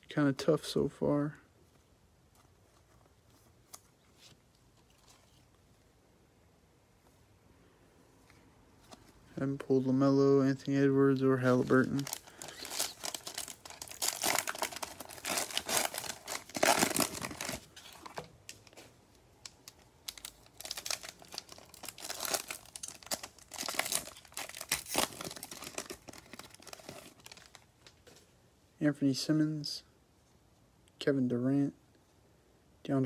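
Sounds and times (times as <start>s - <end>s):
cards rustling: 1.7s - 5.8s, 11.1s - 27.7s
plastic wrapper crinkling and tearing: 11.4s - 28.0s.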